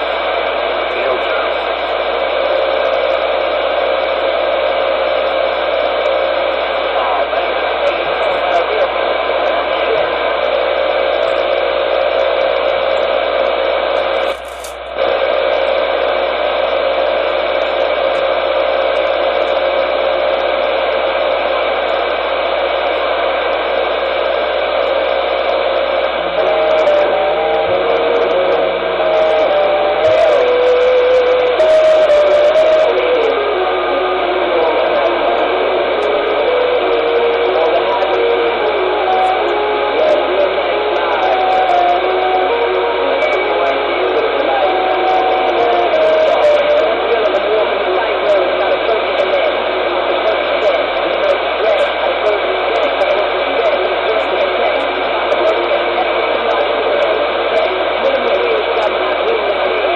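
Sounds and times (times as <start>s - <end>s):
radio static hiss: 0.0s - 59.9s.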